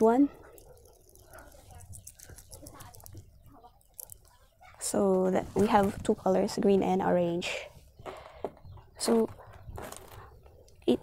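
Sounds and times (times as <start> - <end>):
soft rubbing of fidget tube: 0.3 - 6.4.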